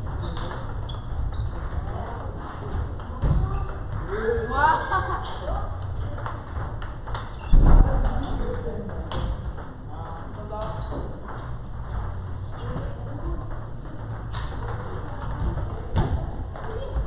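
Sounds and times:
table tennis balls clicking: 0.0s - 17.0s.

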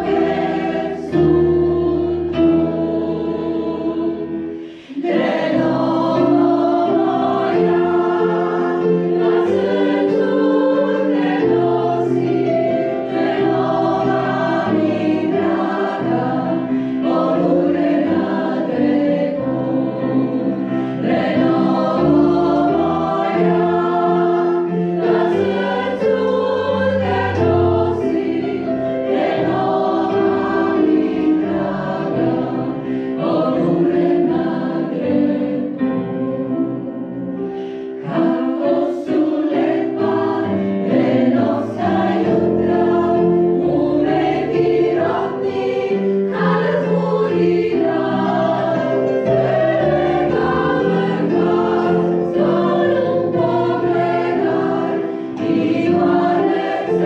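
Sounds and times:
women's choir singing: 0.0s - 57.0s.

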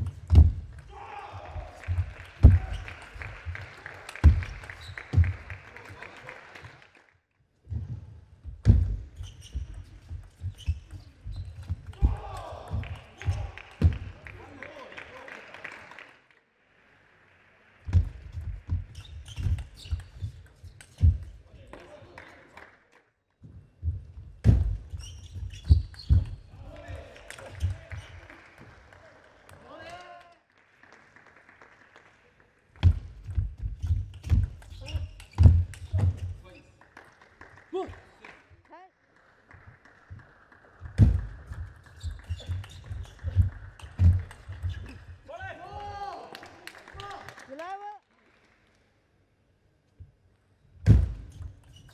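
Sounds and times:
shoes on court floor: 8.6s - 14.1s.

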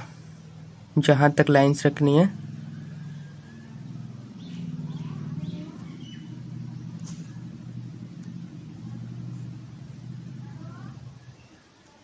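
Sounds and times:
engine rumble: 0.0s - 11.8s.

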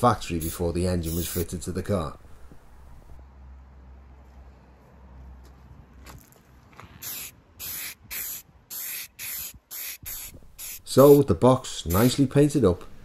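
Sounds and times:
spray paint hissing: 0.3s - 1.5s, 7.0s - 11.3s, 11.9s - 12.2s.

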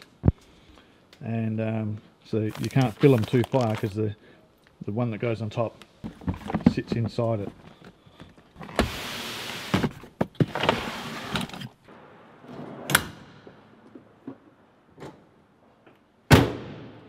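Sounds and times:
plastic tubs scraping and knocking: 2.4s - 4.0s, 6.0s - 11.7s.

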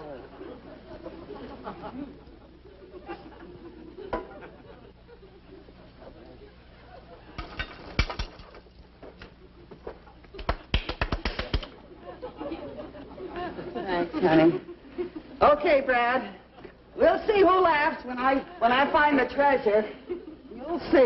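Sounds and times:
studio audience laughter: 0.0s - 7.4s, 11.7s - 15.4s
sharp clapping: 10.2s - 11.8s.

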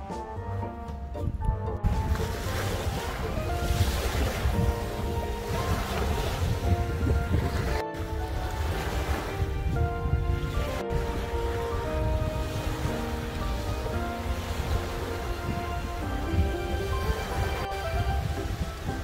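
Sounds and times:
background music: 0.0s - 19.0s
wind buffeting microphone: 0.4s - 19.0s
small waves washing on sand: 2.0s - 19.0s.

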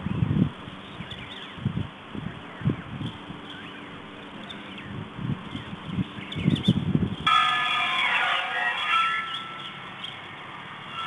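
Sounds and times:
church bells ringing: 7.3s - 10.1s.

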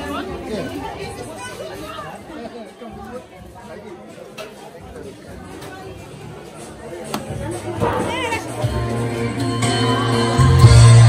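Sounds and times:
chatter of people talking: 0.0s - 10.8s.

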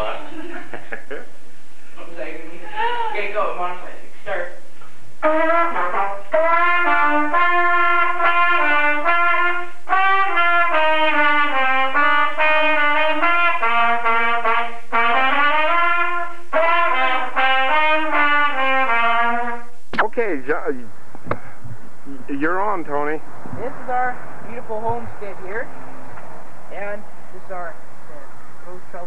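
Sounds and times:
two trumpets playing a tune: 5.2s - 19.7s.

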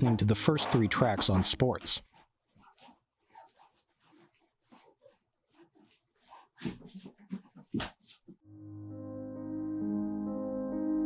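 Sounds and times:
footsteps in a room: 0.0s - 8.5s.

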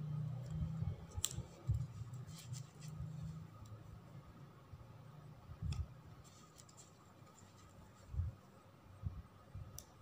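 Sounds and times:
faint ribbon and tape rustling: 1.1s - 3.8s, 5.7s - 8.4s.

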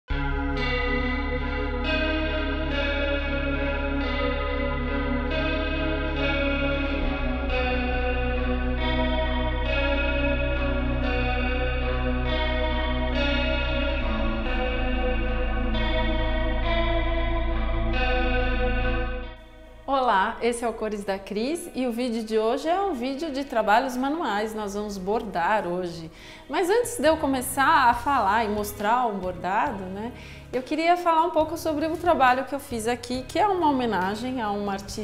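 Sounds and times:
instrumental background music: 0.1s - 35.0s.

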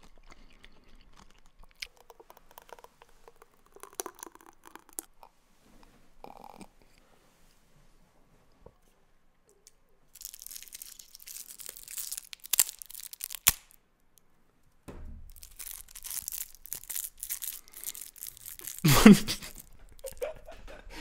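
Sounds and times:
plastic wrapper crinkling: 10.1s - 13.8s, 15.3s - 20.3s.

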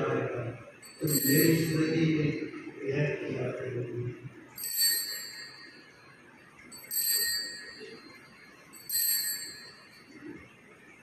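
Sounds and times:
small bell ringing: 0.8s - 2.5s, 4.5s - 10.2s.

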